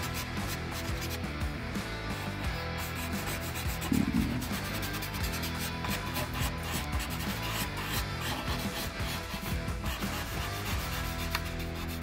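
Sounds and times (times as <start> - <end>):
pencil scratching on paper: 0.0 - 1.2, 2.8 - 12.0.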